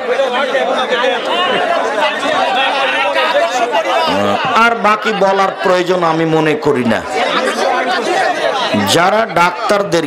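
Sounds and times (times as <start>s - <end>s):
people talking at once: 0.0s - 10.0s
man speaking: 4.1s - 7.1s, 8.7s - 10.0s.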